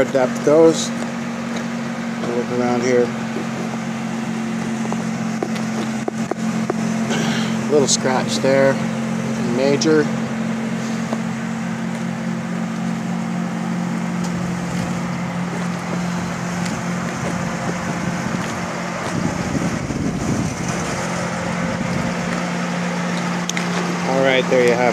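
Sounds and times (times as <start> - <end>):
car engine idling: 0.0 - 24.9.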